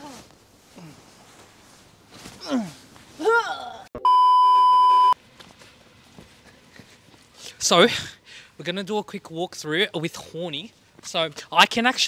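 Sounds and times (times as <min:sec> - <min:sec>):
low background noise: 0:00.0 - 0:12.0
steady high test tone beep: 0:04.0 - 0:05.2.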